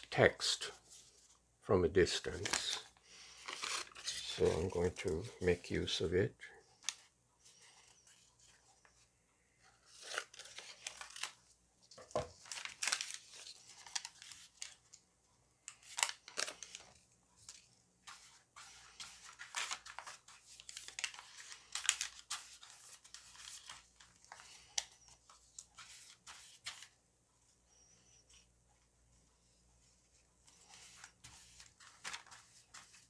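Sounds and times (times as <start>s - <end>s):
paper ripping and rustling: 2.1s - 5.2s, 9.8s - 11.4s, 12.3s - 14.8s, 17.5s - 26.9s, 30.5s - 33.0s.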